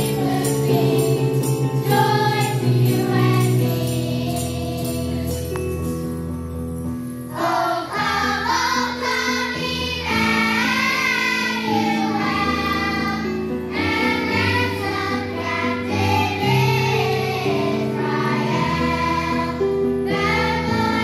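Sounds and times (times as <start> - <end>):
children's choir singing: 0.0 - 5.7, 7.3 - 21.0.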